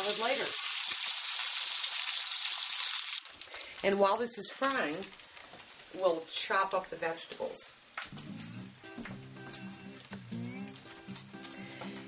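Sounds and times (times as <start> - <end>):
bacon sizzling in a skillet: 0.0 - 7.9
fat popping and crackling: 3.1 - 12.0.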